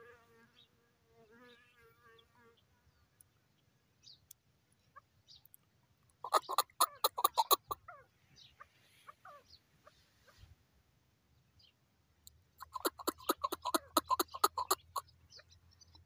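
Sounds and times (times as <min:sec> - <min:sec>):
partridge chuck calls: 0:06.1 - 0:10.5, 0:12.6 - 0:16.0.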